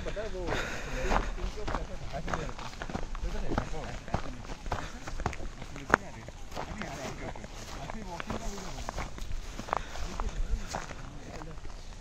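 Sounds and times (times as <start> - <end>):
footsteps: 0.0 - 12.0
indistinct talking: 0.0 - 12.0.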